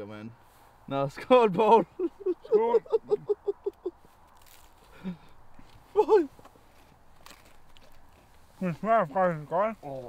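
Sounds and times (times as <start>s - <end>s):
man's loud wordless vocal sounds: 1.4s - 3.8s, 5.9s - 6.4s.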